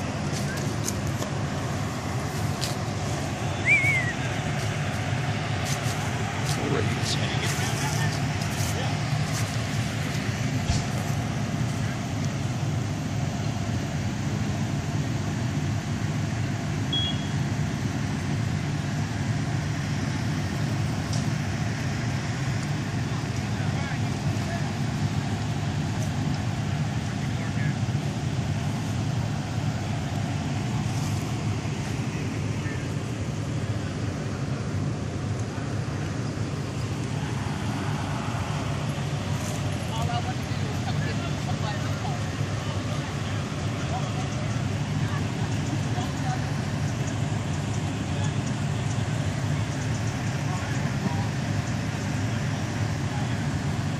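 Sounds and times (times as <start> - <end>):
fire truck engines idling: 0.0 - 53.9.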